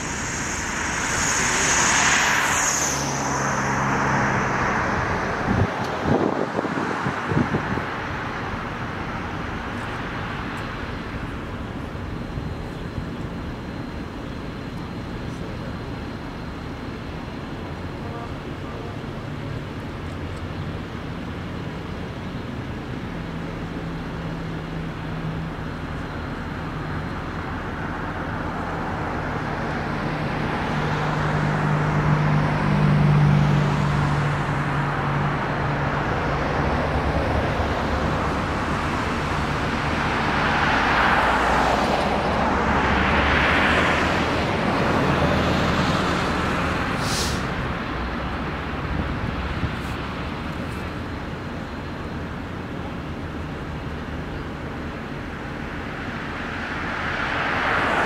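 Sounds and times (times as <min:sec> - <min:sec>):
traffic engine hum: 0:00.0 - 0:58.0
vehicles passing close by: 0:00.0 - 0:58.0.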